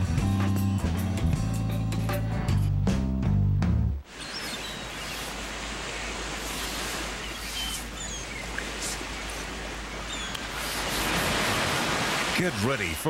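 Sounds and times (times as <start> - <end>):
ocean surf: 4.0 - 13.0
high bird chirps: 4.2 - 5.3, 7.2 - 9.3, 9.9 - 10.4.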